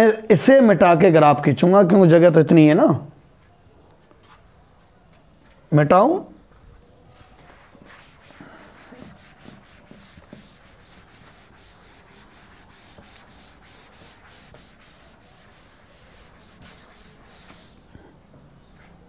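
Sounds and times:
duster rubbing on chalkboard: 7.4s - 17.9s.

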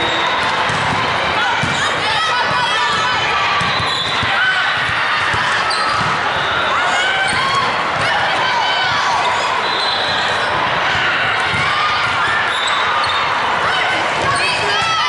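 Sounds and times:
volleyballs struck and bouncing: 0.0s - 6.3s, 10.5s - 12.3s
crowd voices in a hall: 0.0s - 15.0s.

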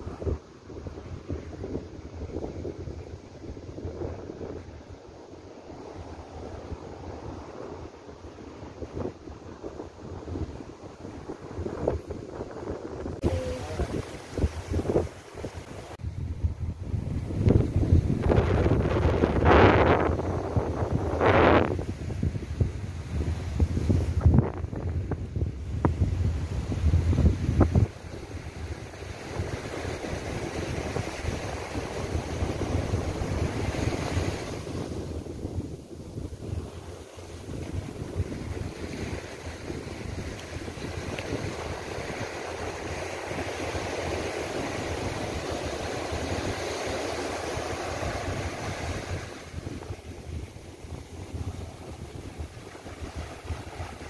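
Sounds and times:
surf breaking on sandy beach: 0.0s - 54.0s
wind buffeting microphone: 0.0s - 54.0s.

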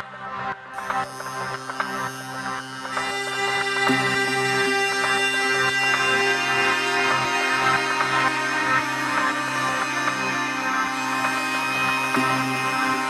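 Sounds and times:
sustained synth drones: 0.0s - 13.0s.

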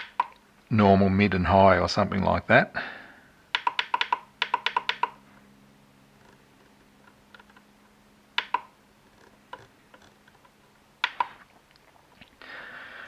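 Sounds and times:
touchscreen key-press clicks: 3.5s - 5.2s, 8.4s - 8.7s, 11.0s - 11.4s.

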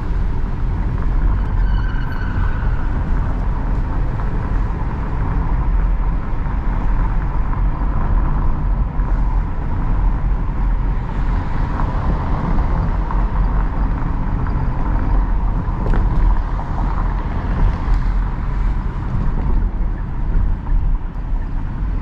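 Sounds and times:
car cabin engine rumble: 0.0s - 22.0s.

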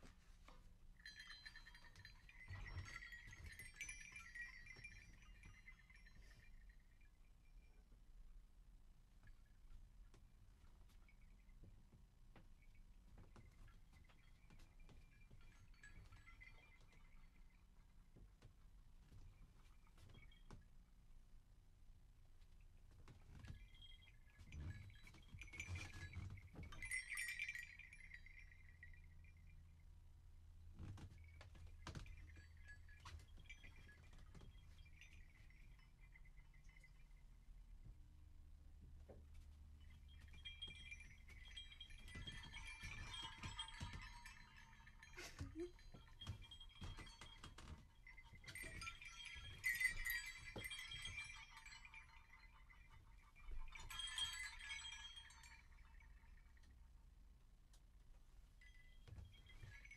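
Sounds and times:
high chime-like tinkling: 0.0s - 8.2s, 10.5s - 18.4s, 19.0s - 21.1s, 23.1s - 57.1s, 58.5s - 59.9s.

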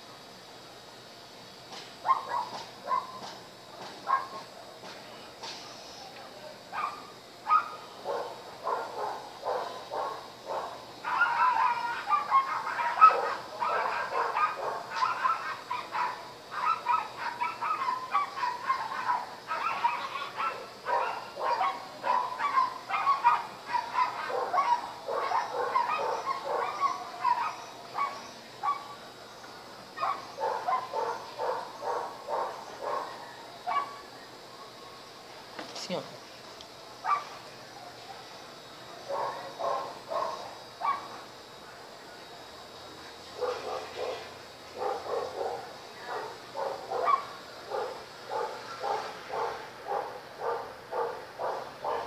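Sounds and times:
animal calling: 8.9s - 29.0s.

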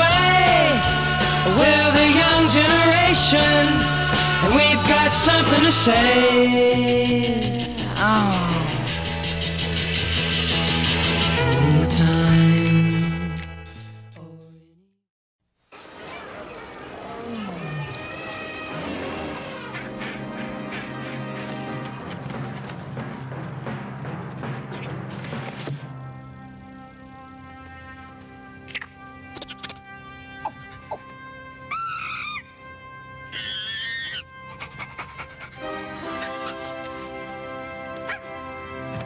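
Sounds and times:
background music with sustained tones: 0.0s - 14.0s, 17.8s - 39.0s
zoo animal calls: 15.8s - 22.1s, 31.7s - 32.5s, 33.3s - 37.1s.

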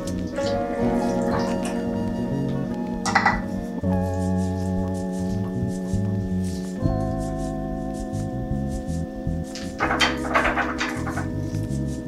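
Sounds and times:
background music sustained chords: 0.0s - 12.0s.

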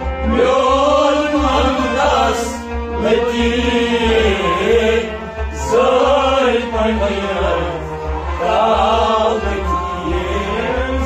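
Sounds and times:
harmonium chords: 0.0s - 11.0s
man singing: 0.2s - 11.0s.

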